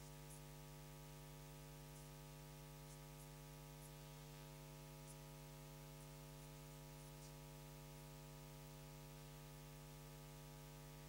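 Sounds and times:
tiny faint ticks: 0.0 - 7.7
low electrical hum: 0.0 - 11.0.

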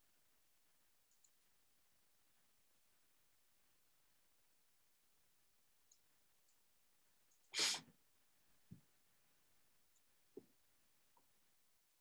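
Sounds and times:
person sneezing: 7.6 - 7.9.

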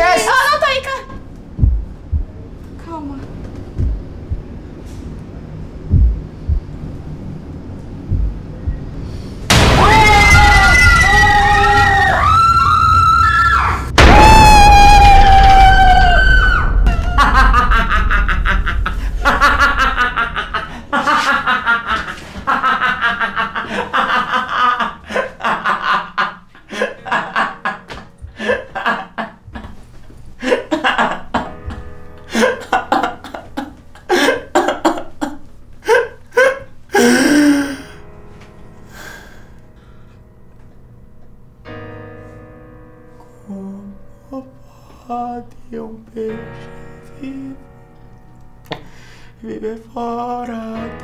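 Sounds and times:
loud screams: 9.6 - 17.3
person gasping: 36.9 - 38.0, 48.8 - 49.4.

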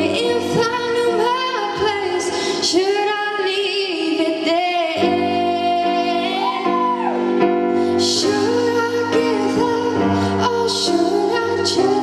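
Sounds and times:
girl singing slow melody: 0.0 - 12.0.

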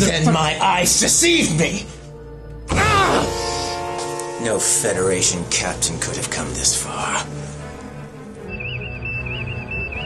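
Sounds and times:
tense dramatic film score: 0.0 - 10.0.

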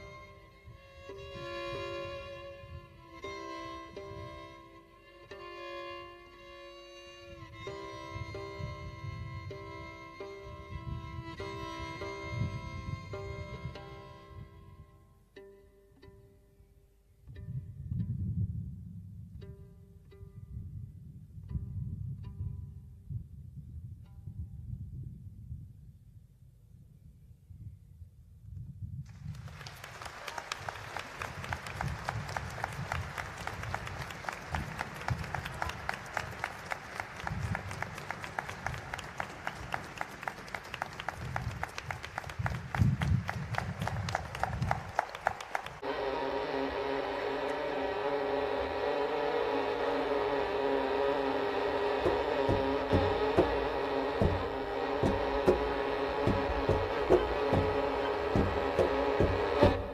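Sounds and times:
string orchestra sustained chords: 0.0 - 18.5, 30.6 - 42.6, 43.5 - 59.9
audience clapping: 29.1 - 45.9, 52.0 - 59.9.

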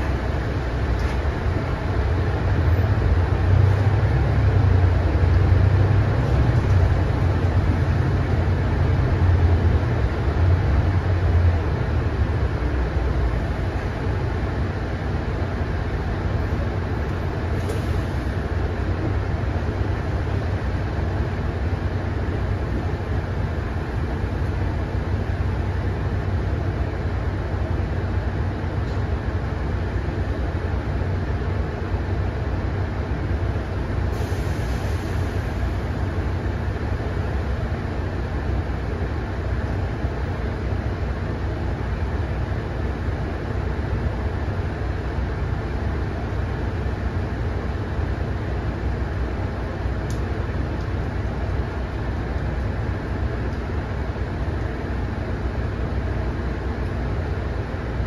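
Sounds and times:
bus engine idling: 0.0 - 58.0
short air hisses: 34.1 - 35.5.

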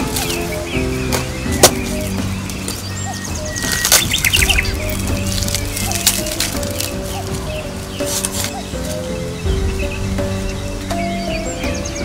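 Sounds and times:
background music with held notes: 0.0 - 12.0
small bird chirping: 0.0 - 12.0.

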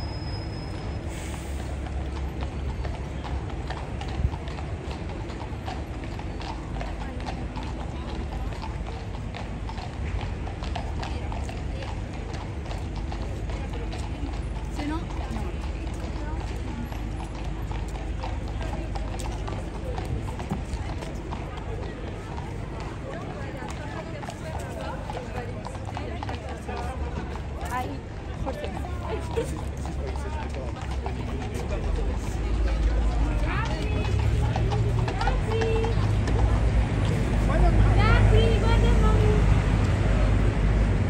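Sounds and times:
horse hooves clip-clopping on tarmac: 0.1 - 41.0.

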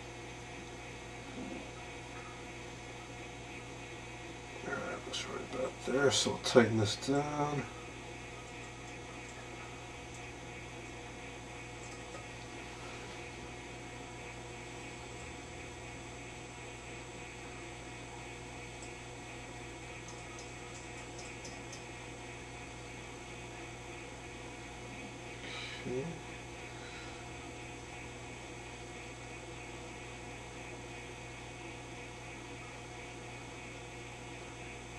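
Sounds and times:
television mains hum: 0.0 - 34.9.

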